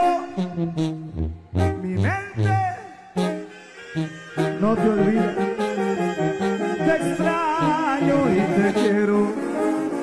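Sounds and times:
repeating low bass line: 0.0s - 3.5s
brass section melody: 0.0s - 10.0s.

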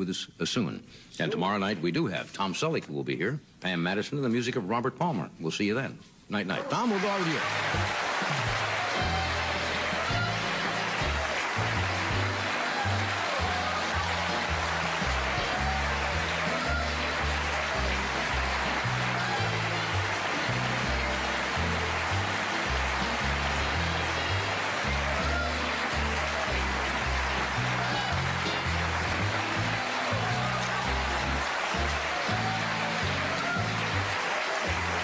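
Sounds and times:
big band brass music: 6.7s - 35.0s.

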